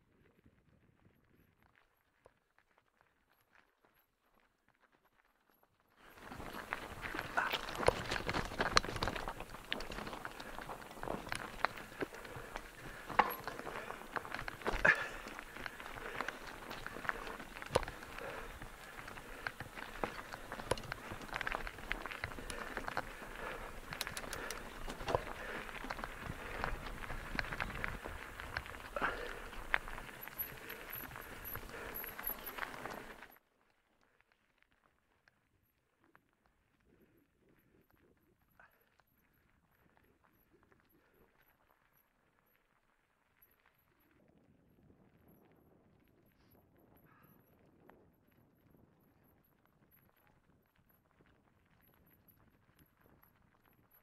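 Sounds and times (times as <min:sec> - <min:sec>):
bike tyres crunching over stones: 0:06.0 - 0:33.4
bike clicking and rattling: 0:06.1 - 0:33.4.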